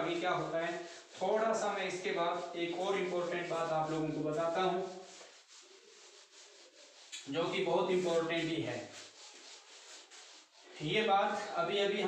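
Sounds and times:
duster rubbing on whiteboard: 0:00.0 - 0:12.0.

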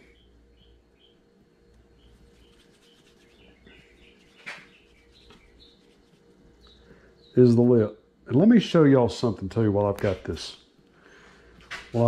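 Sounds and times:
small birds chirping: 0:00.0 - 0:08.7.

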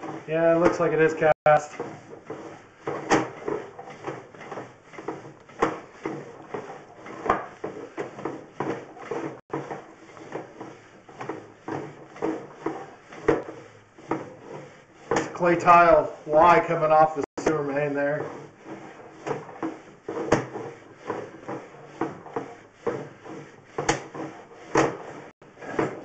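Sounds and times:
cable knocking and scraping in drain pipe: 0:00.0 - 0:26.0.

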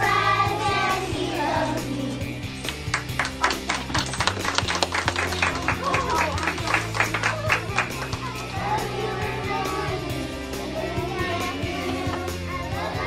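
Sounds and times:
children singing: 0:00.0 - 0:02.4, 0:07.8 - 0:13.0
children's song with bass line: 0:00.0 - 0:13.0
hand clapping: 0:02.6 - 0:08.4.

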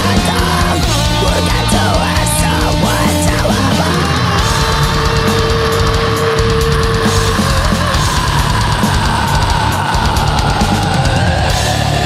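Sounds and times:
distorted electric guitars: 0:00.0 - 0:12.0
drum kit: 0:00.0 - 0:12.0.

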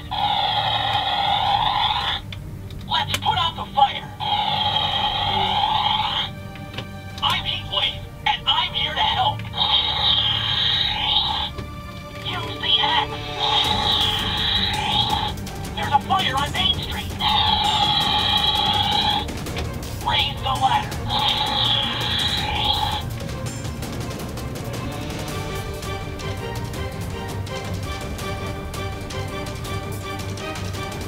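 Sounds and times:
toy siren wailing: 0:00.0 - 0:02.3, 0:03.8 - 0:06.4, 0:07.4 - 0:11.6, 0:12.3 - 0:19.3, 0:20.0 - 0:23.1.

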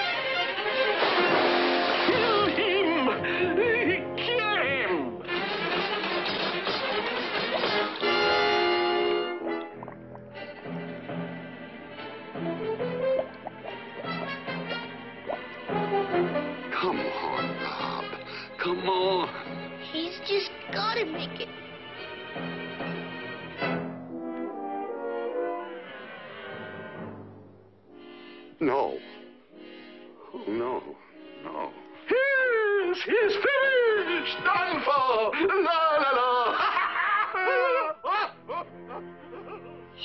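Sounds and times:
orchestral film score: 0:00.0 - 0:35.6, 0:36.7 - 0:40.0.

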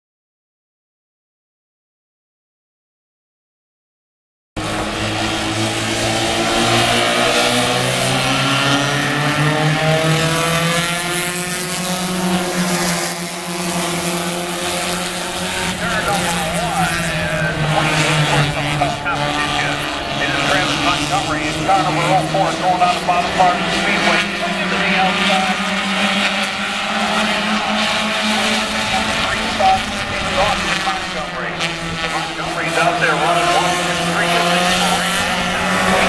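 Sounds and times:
stock car engines droning: 0:04.6 - 0:36.0.

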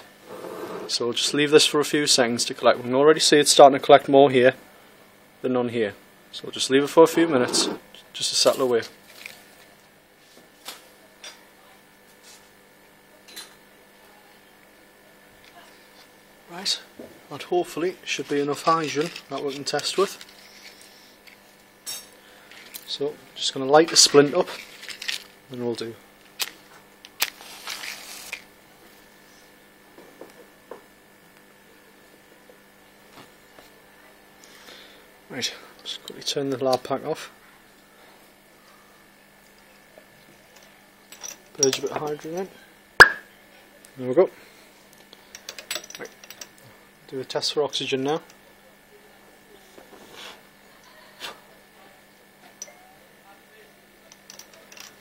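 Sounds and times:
glassware clicking and clinking: 0:43.0 - 0:43.3.

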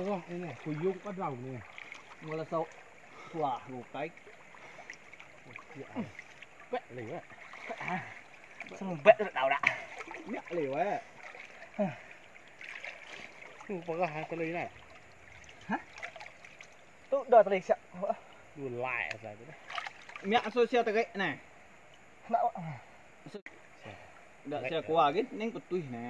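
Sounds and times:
men talking: 0:00.0 - 0:04.7, 0:05.4 - 0:12.1, 0:13.6 - 0:14.8, 0:17.1 - 0:21.5, 0:22.2 - 0:26.0
river water lapping and splashing: 0:00.0 - 0:21.1.

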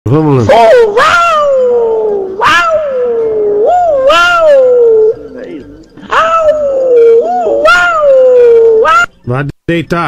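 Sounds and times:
dog howling: 0:00.5 - 0:05.3, 0:06.0 - 0:09.2.

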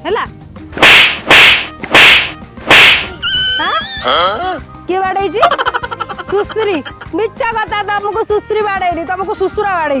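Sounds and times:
whip-like slapping smacks on helmet: 0:00.8 - 0:03.2.

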